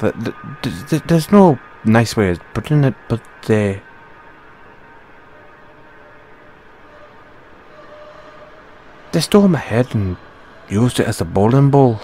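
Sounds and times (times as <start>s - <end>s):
faint steady tone: 0.0s - 12.0s
low hiss: 0.0s - 12.0s.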